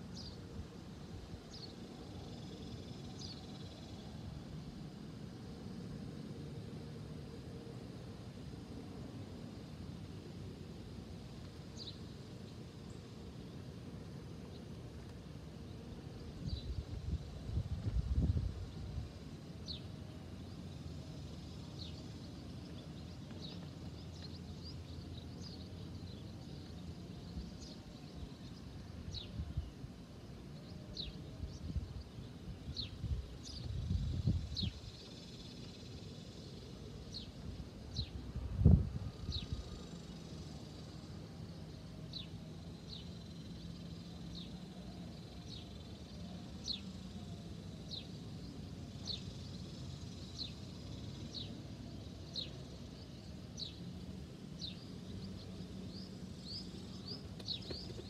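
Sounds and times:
birds chirping: 47.8 - 58.0.

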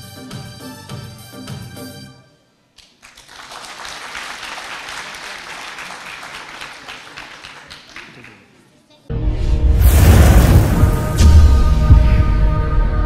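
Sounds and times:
audience applauding: 2.8 - 8.6.

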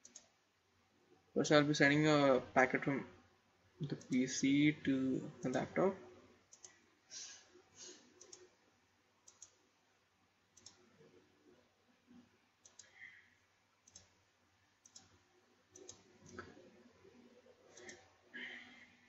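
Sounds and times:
faint computer mouse clicks: 0.0 - 0.3, 6.5 - 6.8, 7.9 - 8.5, 9.2 - 9.6, 10.6 - 10.9, 12.6 - 13.2, 13.8 - 14.2, 14.8 - 16.6, 17.7 - 18.1.

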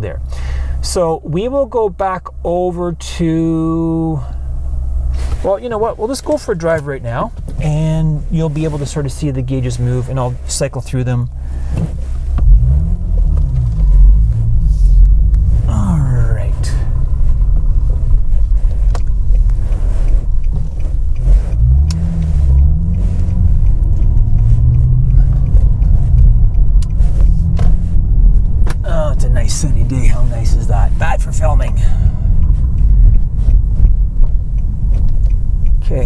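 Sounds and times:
car engine accelerating: 0.0 - 36.0.

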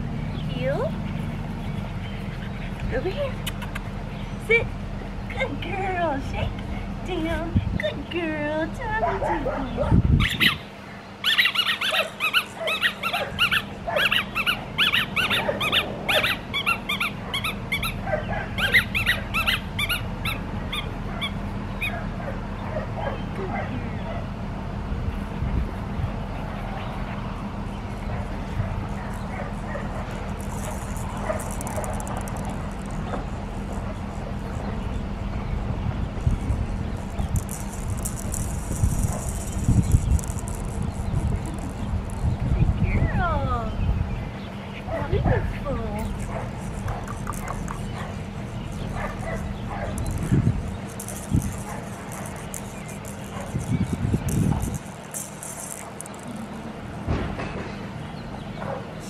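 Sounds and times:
faint steady hum: 0.0 - 59.0
wind buffeting microphone: 5.0 - 10.8, 24.5 - 55.3
puppy yipping: 9.0 - 10.6, 11.2 - 24.2, 44.8 - 53.8
high rattling hiss: 28.8 - 42.4, 46.0 - 56.6.

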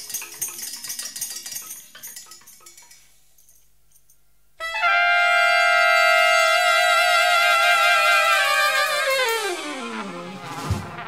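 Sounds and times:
horn section sustained chord: 4.7 - 11.0.

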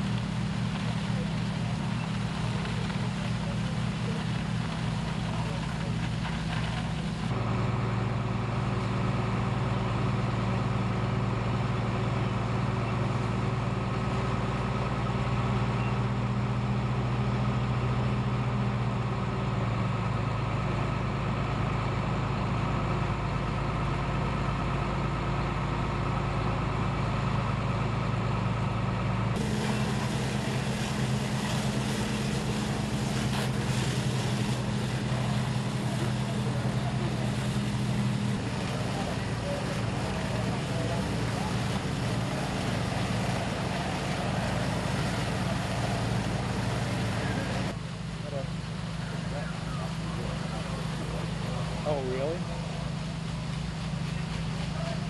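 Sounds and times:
fire engine running: 0.0 - 55.0.

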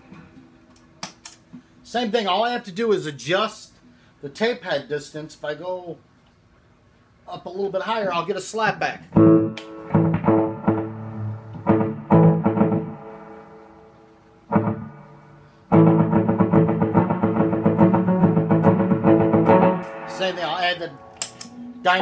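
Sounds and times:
electric guitar with slapback echo: 9.2 - 13.8, 14.5 - 21.8.

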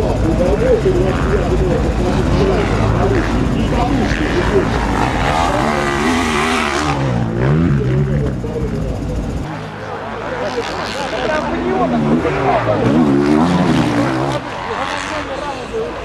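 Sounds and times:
motocross bike engines revving: 0.0 - 16.0.

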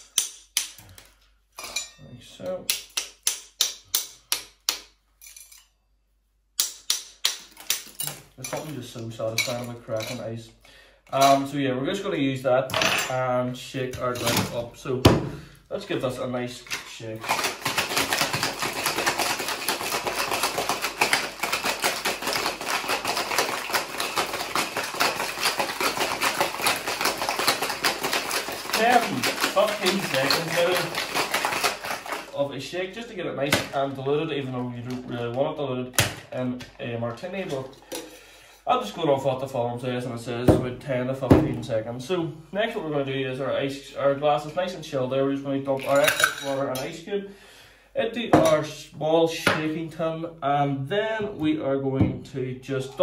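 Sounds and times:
ice rattling in a metal shaker: 17.2 - 32.4, 45.8 - 46.6.

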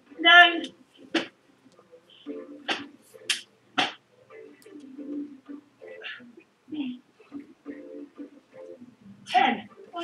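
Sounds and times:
faint muffled voices: 0.0 - 10.0.

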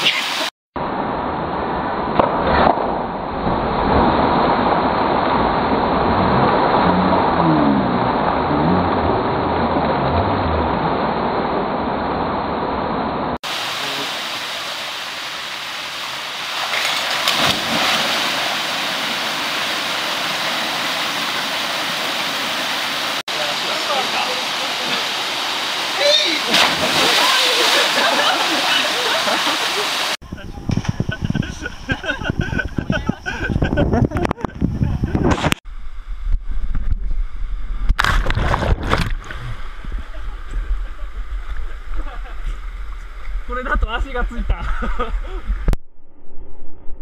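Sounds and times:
stream and waterfall rushing: 0.0 - 0.5, 13.4 - 30.2
sharp knocks and splashes: 16.4 - 23.2, 26.4 - 28.6, 37.9 - 39.6.

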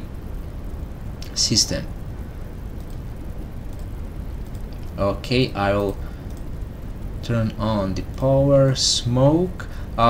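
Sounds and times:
microphone background rumble and hiss: 0.0 - 10.0
faint clicks: 2.7 - 5.0, 5.7 - 6.6.

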